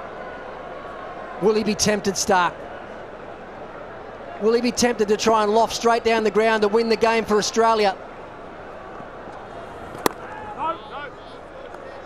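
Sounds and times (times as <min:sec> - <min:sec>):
stadium crowd murmur: 0:00.0 - 0:12.0
bat hitting ball: 0:09.9 - 0:10.3.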